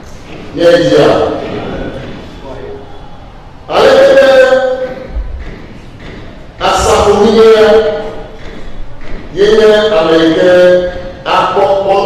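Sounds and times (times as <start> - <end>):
man chanting into microphone: 6.6 - 8.1.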